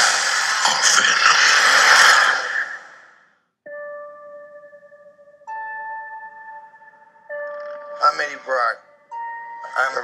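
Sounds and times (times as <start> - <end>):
rushing hissing sound effect: 0.0 - 3.1.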